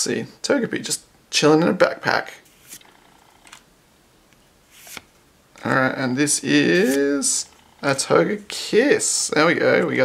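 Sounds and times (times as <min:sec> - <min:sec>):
card sliding swish: 0:02.4 - 0:02.9, 0:04.7 - 0:05.1, 0:06.6 - 0:07.2.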